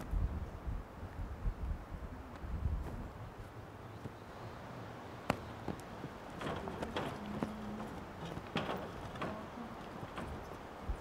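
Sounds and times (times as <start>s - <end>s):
sharp knocks: 6.4s - 10.6s.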